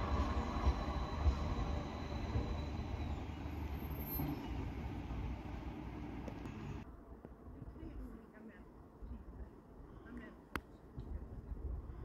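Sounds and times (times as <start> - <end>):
tram rumbling on rails: 0.0 - 6.8.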